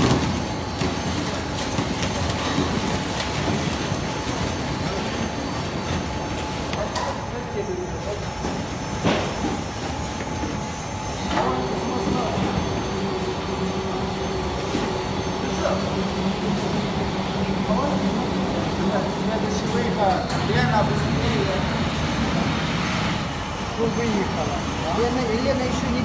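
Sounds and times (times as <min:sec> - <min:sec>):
production line machine noise: 0:00.0 - 0:26.0
steady machine hum: 0:00.0 - 0:26.0.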